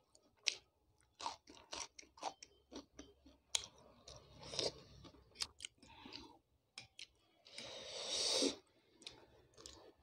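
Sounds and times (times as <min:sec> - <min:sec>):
chewing crunchy food: 0:00.0 - 0:07.6, 0:08.8 - 0:10.0.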